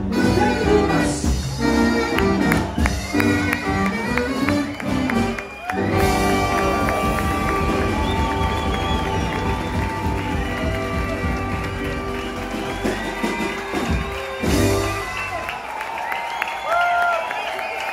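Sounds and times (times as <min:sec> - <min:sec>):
live swing band playing: 0:00.0 - 0:15.6.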